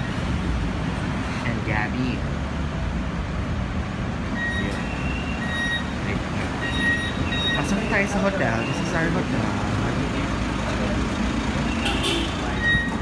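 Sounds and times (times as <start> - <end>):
vehicle engines rumbling: 0.0 - 13.0.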